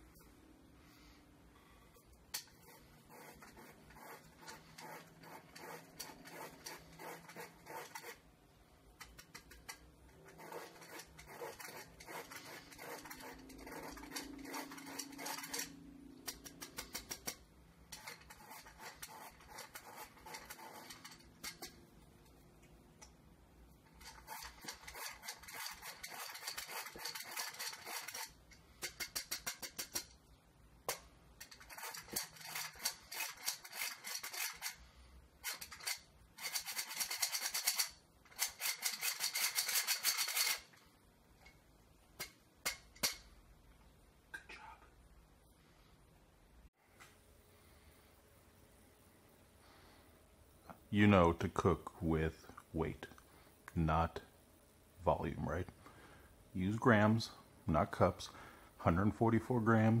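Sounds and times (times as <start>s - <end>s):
flour sifter crank rattling: 8.9s - 21.8s, 23.8s - 30.1s, 31.3s - 40.8s.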